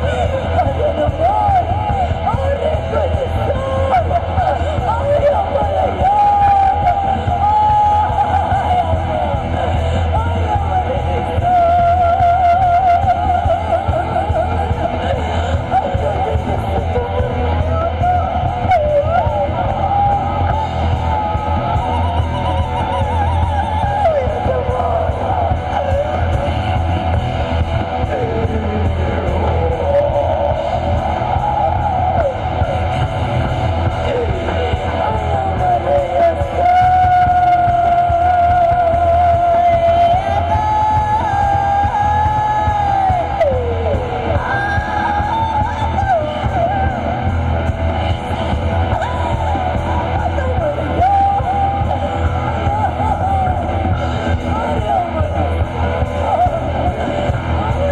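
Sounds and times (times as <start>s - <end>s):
live rock band playing loudly: 0.0s - 57.9s.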